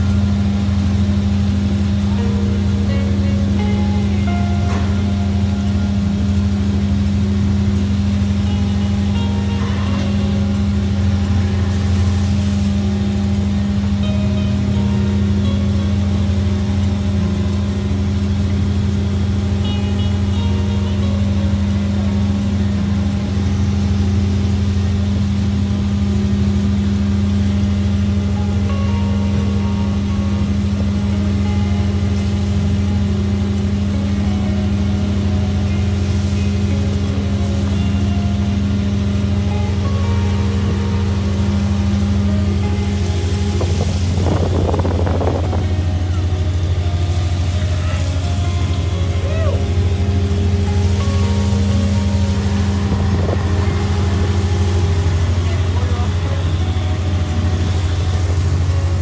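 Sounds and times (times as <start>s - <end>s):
boat engine drone: 0.0s - 59.0s
background music: 1.7s - 24.3s, 28.2s - 59.0s.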